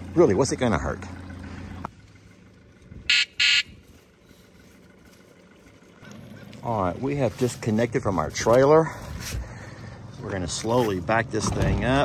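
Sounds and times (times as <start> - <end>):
outboard motor idling: 0.0 - 12.0.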